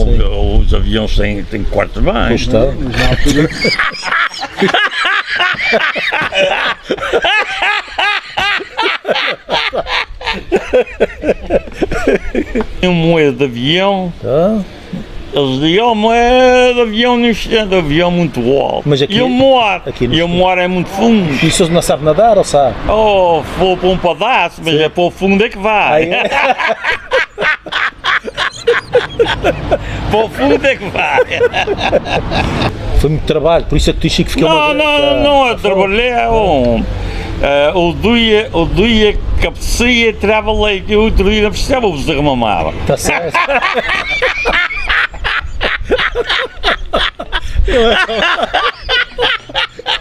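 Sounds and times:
men laughing heartily: 0:02.8 - 0:12.8, 0:25.8 - 0:32.9, 0:42.7 - 0:50.0.

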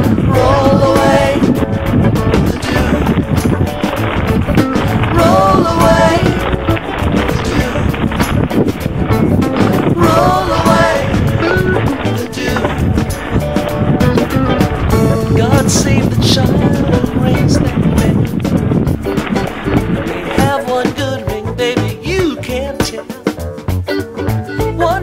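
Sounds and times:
instrumental background music: 0:00.0 - 0:25.0.

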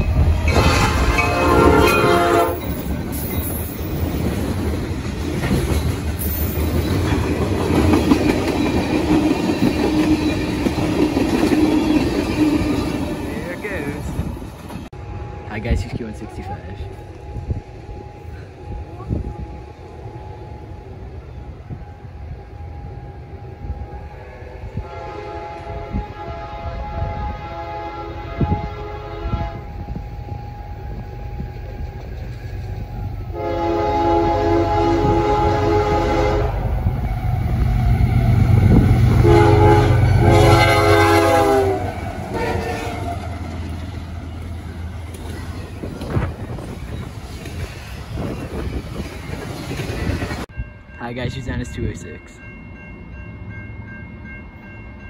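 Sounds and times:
train cars rumbling and clattering: 0:00.0 - 0:55.0
train air horn blasts: 0:00.5 - 0:02.7, 0:22.3 - 0:31.5, 0:33.3 - 0:37.2, 0:38.1 - 0:43.2.

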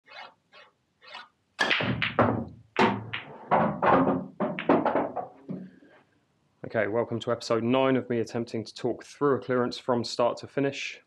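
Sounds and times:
cue ball struck hard: 0:01.6 - 0:05.2
pool balls clacking: 0:01.6 - 0:05.7.

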